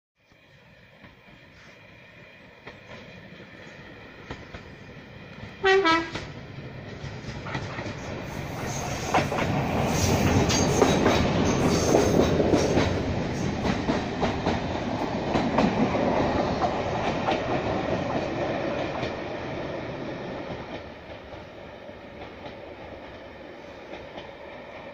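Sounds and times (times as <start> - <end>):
diesel railcar passing: 0.2 - 24.9.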